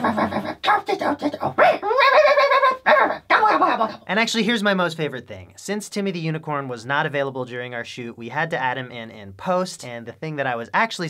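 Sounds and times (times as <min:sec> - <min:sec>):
man doing squeaky babbling voice: 0:00.0 - 0:04.1.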